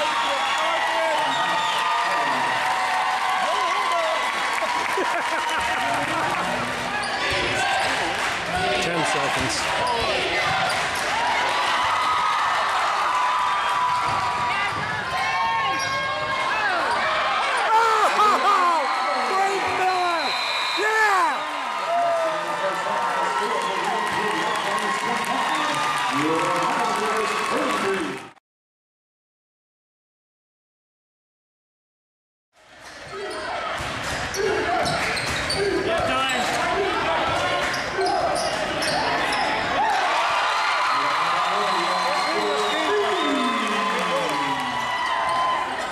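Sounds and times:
crowd shouting: 0:00.0 - 0:23.5, 0:35.5 - 0:45.9
sneakers squeaking: 0:06.9 - 0:08.0, 0:09.8 - 0:11.0, 0:15.6 - 0:17.6, 0:32.9 - 0:36.5, 0:37.4 - 0:39.7.

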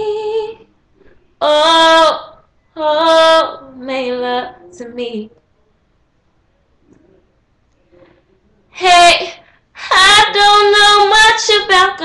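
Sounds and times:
girl singing unaccompanied: 0:08.8 - 0:12.0.

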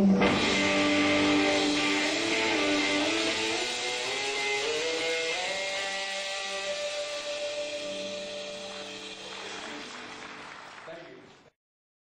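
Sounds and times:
guitar note ringing: 0:00.2 - 0:09.2.

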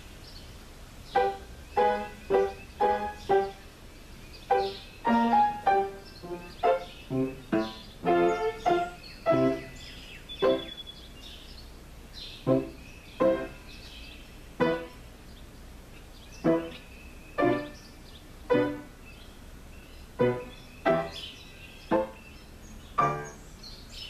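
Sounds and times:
solo piano: 0:01.1 - 0:03.8, 0:04.4 - 0:10.8, 0:12.4 - 0:13.7, 0:14.6 - 0:15.1, 0:16.4 - 0:17.8, 0:18.4 - 0:19.1, 0:20.1 - 0:21.3, 0:21.9 - 0:22.3, 0:22.9 - 0:23.5.

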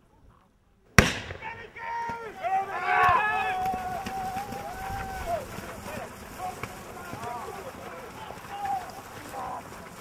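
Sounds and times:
loud pyrotechnic bang: 0:01.0 - 0:01.4
people shouting: 0:01.3 - 0:10.0.

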